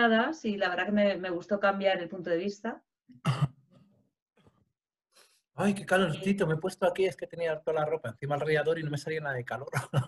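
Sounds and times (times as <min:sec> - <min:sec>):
person clearing throat: 0:03.2 - 0:03.6, 0:09.8 - 0:10.0.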